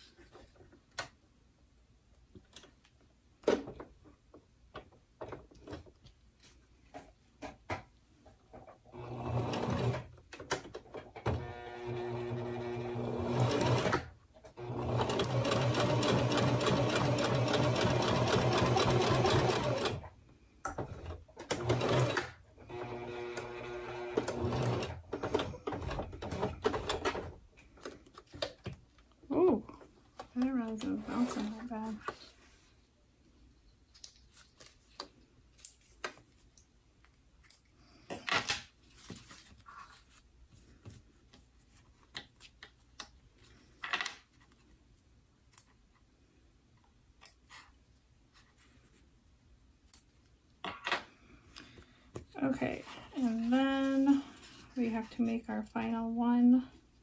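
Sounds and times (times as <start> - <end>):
sewing machine stitching: 8.9 - 10.1, 11.2 - 20.1, 21.4 - 27.2.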